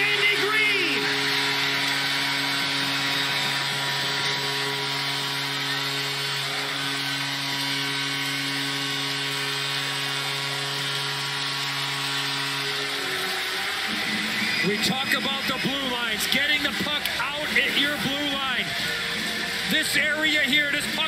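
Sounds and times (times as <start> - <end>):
arena crowd cheering: 0.0 - 21.0.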